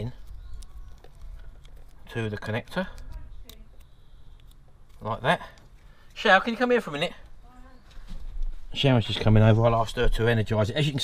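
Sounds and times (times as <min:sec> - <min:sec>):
plastic connector clicking: 0:00.3 - 0:04.7.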